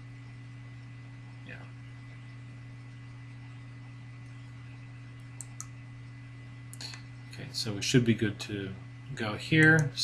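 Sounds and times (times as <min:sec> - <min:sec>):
low electrical hum: 0:00.0 - 0:10.0
computer mouse clicks: 0:05.4 - 0:05.8, 0:06.7 - 0:07.0.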